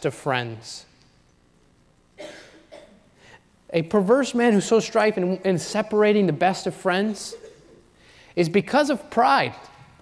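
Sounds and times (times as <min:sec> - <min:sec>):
person coughing: 0:02.2 - 0:03.1, 0:07.3 - 0:07.8.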